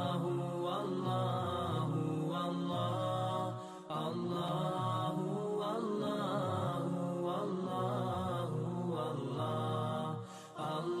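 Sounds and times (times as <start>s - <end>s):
chanted vocal music: 0.0s - 11.0s.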